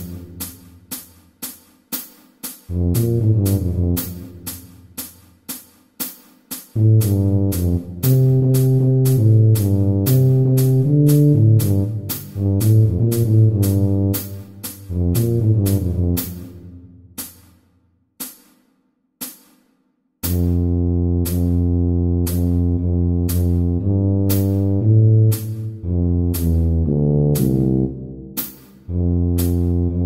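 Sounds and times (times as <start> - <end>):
tuba playing pop melody: 0.0 - 0.4, 2.7 - 4.7, 6.8 - 16.9, 20.2 - 30.0
ticking percussion track: 0.0 - 30.0.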